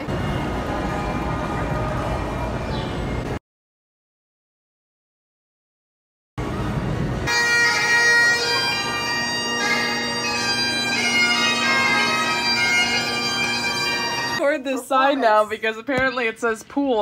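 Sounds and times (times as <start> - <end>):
bagpipes playing a tune: 7.2 - 14.4.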